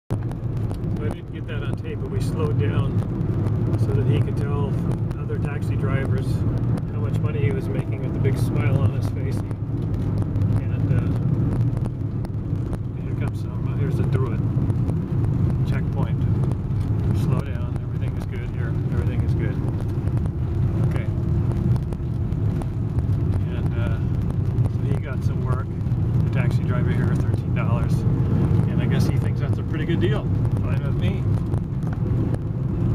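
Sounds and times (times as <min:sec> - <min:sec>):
car engine and road rumble: 0:00.1 - 0:32.9.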